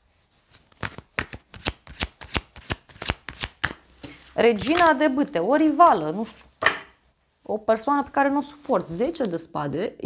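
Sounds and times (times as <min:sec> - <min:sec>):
cards being shuffled: 0:00.5 - 0:05.1.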